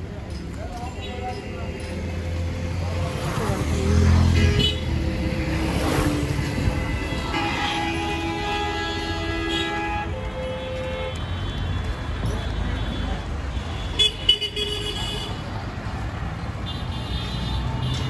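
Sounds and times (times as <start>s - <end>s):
traffic engines running: 0.0s - 18.0s
vehicle horns: 4.0s - 15.4s, 16.6s - 18.0s.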